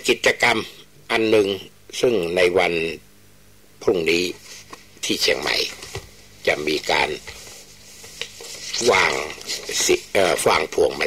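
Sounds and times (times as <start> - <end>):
man talking: 0.0 - 3.0, 3.8 - 4.4, 5.0 - 5.8, 6.4 - 7.4, 8.7 - 11.0.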